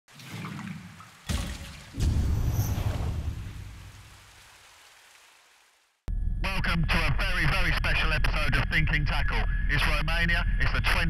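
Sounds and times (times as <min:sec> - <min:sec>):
sharp watery hit: 0:00.3 - 0:04.4
heavy hit with deep rumble: 0:02.0 - 0:04.0.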